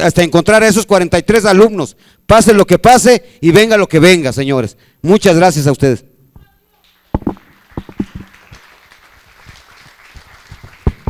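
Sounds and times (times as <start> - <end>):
room noise: 6.3 - 11.0
sharp clicks and knocks: 7.2 - 8.3.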